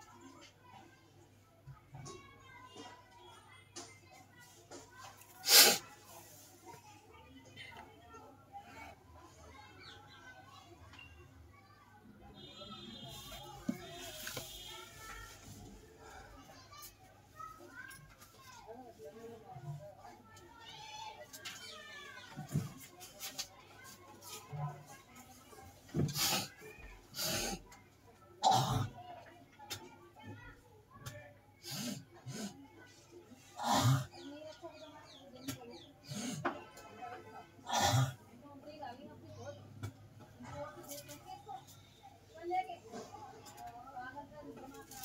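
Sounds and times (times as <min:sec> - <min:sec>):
person sneezing: 0:05.4 - 0:05.8.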